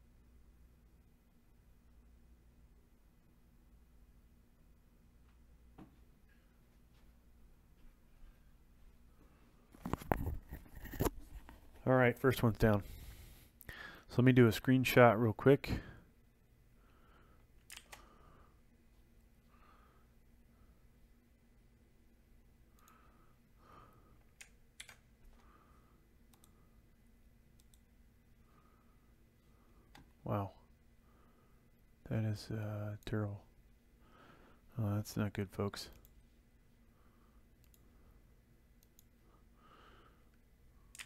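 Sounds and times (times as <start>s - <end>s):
computer keys and mouse clicks: 17.6s - 18.1s, 24.2s - 25.1s, 26.3s - 26.6s, 27.6s - 27.8s, 37.6s - 37.8s.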